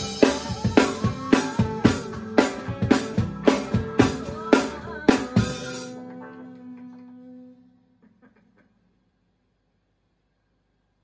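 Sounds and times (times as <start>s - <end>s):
drum kit playing: 0.0s - 6.0s
rock song: 0.0s - 6.0s.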